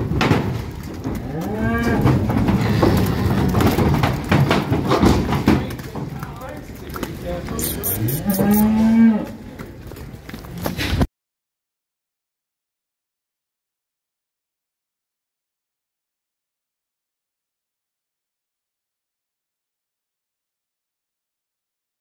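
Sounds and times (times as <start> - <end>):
cattle hooves knocking and clattering: 0.0 - 11.0
cattle mooing: 7.6 - 9.4.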